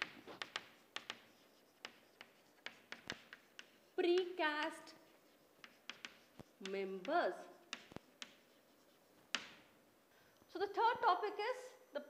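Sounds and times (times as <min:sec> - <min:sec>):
chalk tapping on chalkboard: 0:00.0 - 0:09.7.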